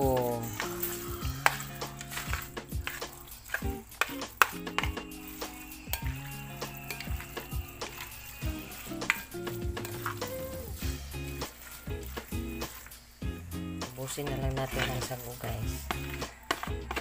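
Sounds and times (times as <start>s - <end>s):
background music with held notes: 0.0s - 17.0s
plastic spoon scraping plate: 0.6s - 10.4s.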